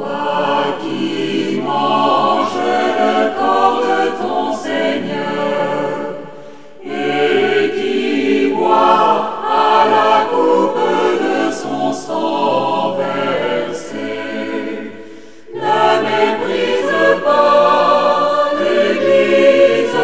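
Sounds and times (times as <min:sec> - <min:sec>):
choir singing sacred song: 0:00.0 - 0:20.0.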